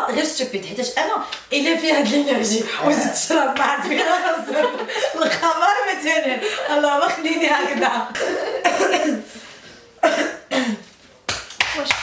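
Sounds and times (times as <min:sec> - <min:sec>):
woman laughing hard: 0:03.9 - 0:05.3, 0:06.2 - 0:09.2.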